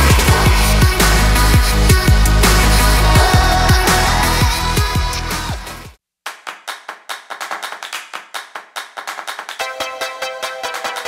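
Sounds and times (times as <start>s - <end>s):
electronic music: 0.0s - 6.0s, 9.6s - 11.0s
sharp handclaps: 6.2s - 11.0s.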